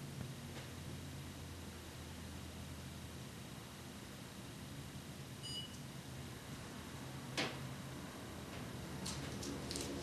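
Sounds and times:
short high electronic beep: 5.4s - 5.8s.

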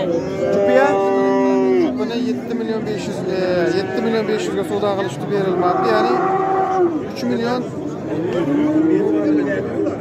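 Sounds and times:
cow mooing: 2.9s - 4.7s, 5.4s - 7.0s.

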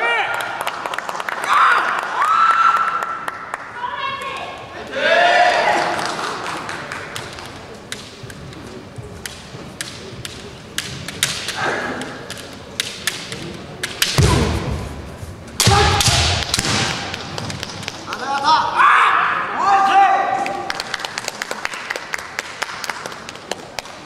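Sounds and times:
people shouting: 4.8s - 6.0s, 15.6s - 16.4s, 18.3s - 20.4s
bamboo swords clacking: 7.1s - 14.6s.

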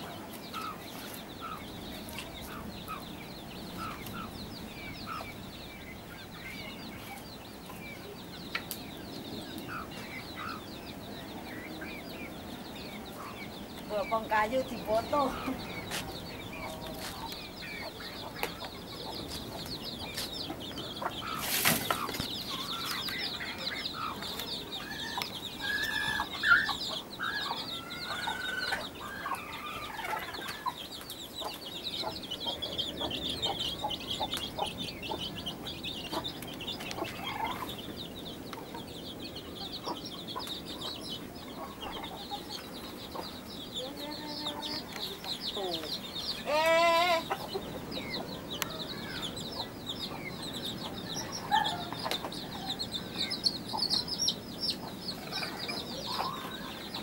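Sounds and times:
chickens clucking: 0.0s - 57.0s.

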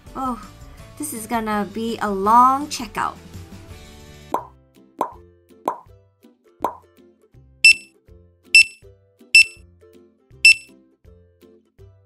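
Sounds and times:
soft background music: 0.0s - 12.0s
checkout scanner beeps: 7.7s - 7.9s, 8.6s - 8.8s, 9.4s - 9.6s, 10.5s - 10.7s.

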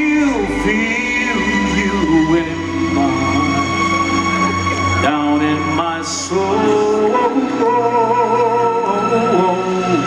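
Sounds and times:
live band playing slow ballad: 0.0s - 10.0s
person singing: 0.0s - 10.0s.

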